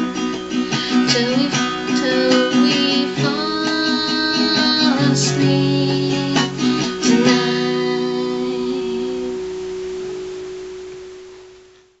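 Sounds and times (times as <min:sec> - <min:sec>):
acoustic guitar note ringing: 0:00.0 - 0:12.0.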